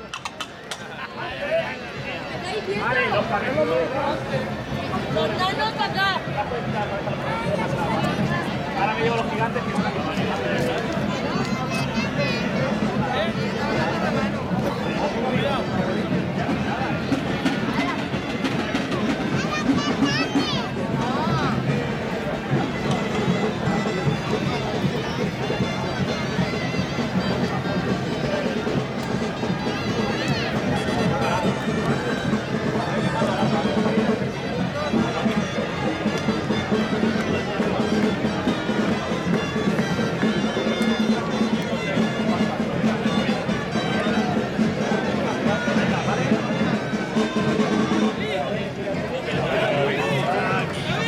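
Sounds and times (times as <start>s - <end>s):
crowd chatter: 0.0s - 51.0s
folk music on reed pipes: 1.8s - 51.0s.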